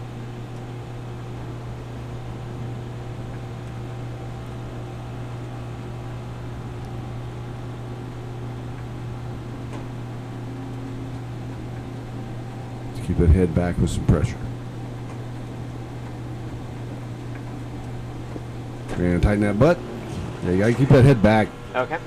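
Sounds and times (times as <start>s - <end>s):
centrifuge humming with hiss: 0.0s - 22.0s.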